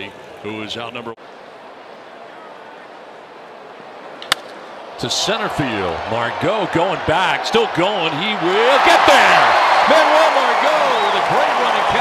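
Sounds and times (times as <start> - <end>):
bat cracking a baseball: 4.2 - 4.7.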